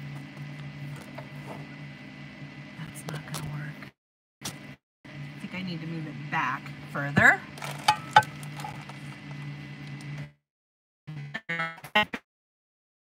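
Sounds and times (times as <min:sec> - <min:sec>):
steady low hum: 0:00.0 - 0:03.9, 0:04.5 - 0:10.4.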